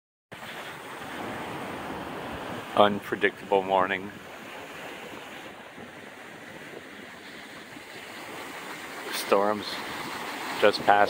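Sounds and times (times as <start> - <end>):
surf washing on beach: 0.3 - 11.0
wind noise on microphone: 4.2 - 8.5.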